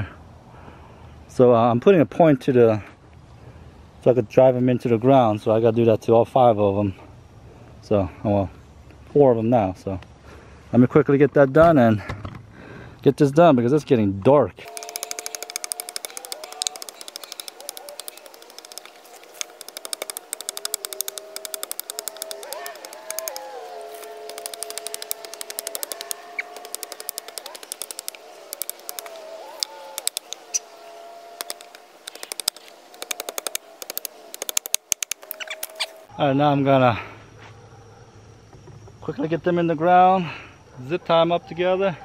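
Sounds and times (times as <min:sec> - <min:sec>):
blade cutting wooden stakes: 0:14.6 - 0:30.6, 0:31.4 - 0:36.0.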